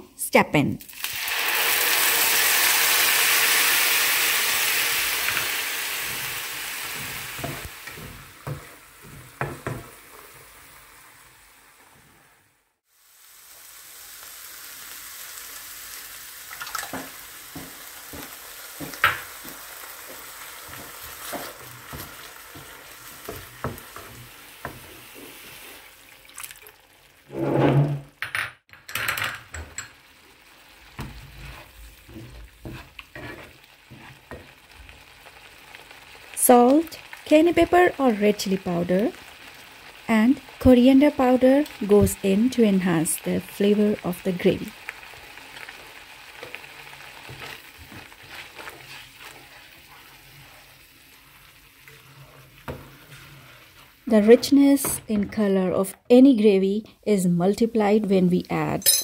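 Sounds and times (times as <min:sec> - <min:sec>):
paste sizzling in hot oil: 0:00.8 - 0:12.1, 0:12.8 - 0:27.3, 0:29.8 - 0:54.7
spatula scraping in pan: 0:04.6 - 0:10.6, 0:17.5 - 0:26.0, 0:27.3 - 0:28.0, 0:30.8 - 0:34.7, 0:45.0 - 0:54.7.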